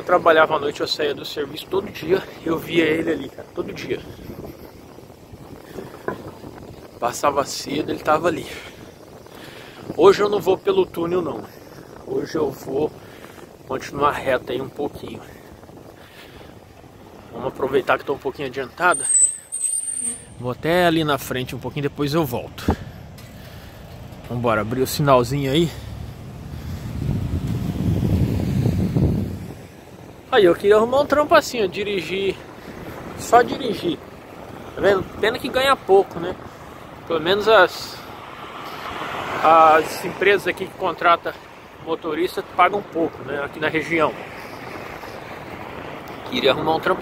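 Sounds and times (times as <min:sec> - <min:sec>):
bicycle road noise: 0:00.0 - 0:47.0
wind rumble on microphone: 0:00.0 - 0:47.0.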